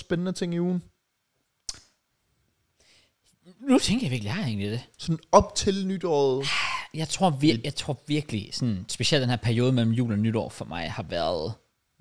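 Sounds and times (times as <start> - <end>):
sharp click: 1.6 - 2.0.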